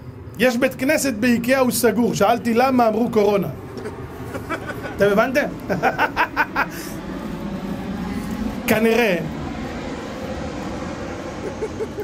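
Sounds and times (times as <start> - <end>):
man speaking: 0.4 - 3.6, 8.7 - 9.4.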